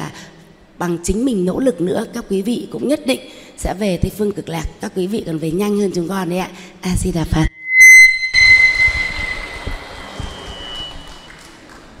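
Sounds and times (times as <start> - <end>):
sharp high ringing tone: 7.5 - 11.4
audience applauding: 9.6 - 12.0.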